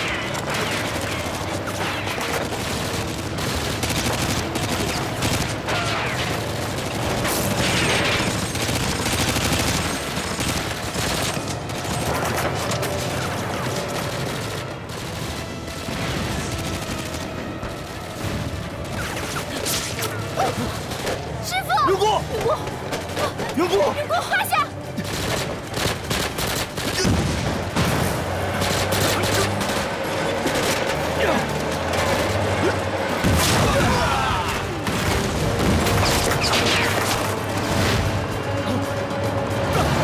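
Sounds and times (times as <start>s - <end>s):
heavy sustained gunfire: 0.0s - 21.5s, 24.9s - 40.0s.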